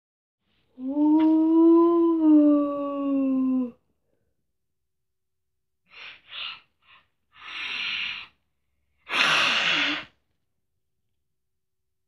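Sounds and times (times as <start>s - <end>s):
person exhaling breathily: 9.1s - 10.2s.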